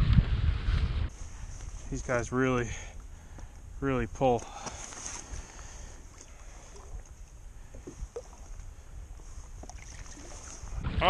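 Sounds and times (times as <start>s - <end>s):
wind rumbling on microphone: 0.0s - 11.0s
water lapping at kayak: 4.4s - 10.8s
small splash: 9.6s - 10.7s.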